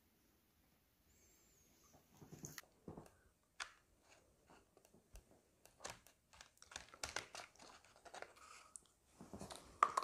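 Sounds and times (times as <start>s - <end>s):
paper cups and plastic trays handled: 2.2s - 10.0s.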